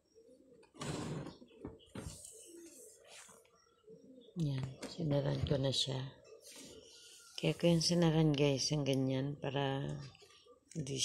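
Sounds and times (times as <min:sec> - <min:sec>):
bird cooing: 0:00.0 - 0:04.4.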